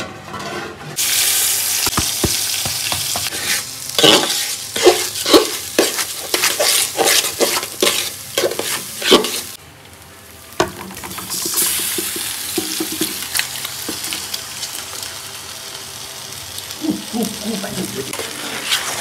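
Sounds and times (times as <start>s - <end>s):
metal spoon scraping a pot: 3.3s - 9.6s.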